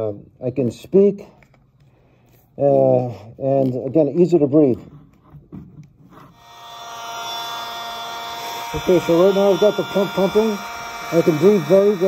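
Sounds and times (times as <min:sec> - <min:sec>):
electric air pump whirring: 0:06.3 - 0:12.0.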